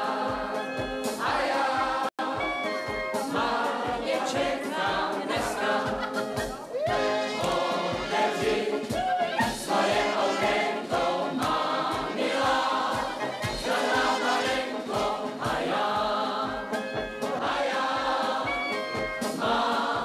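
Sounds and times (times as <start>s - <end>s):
group singing: 0.0s - 20.0s
instrumental accompaniment: 0.0s - 20.0s.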